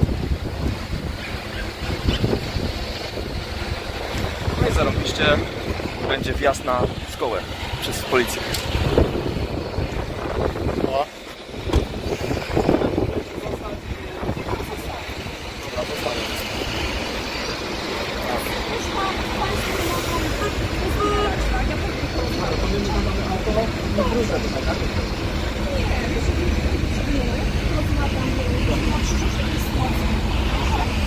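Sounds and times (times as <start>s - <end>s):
wind on microphone: 0.0s - 17.8s
indistinct voices talking: 0.0s - 31.0s
road traffic: 0.0s - 31.0s.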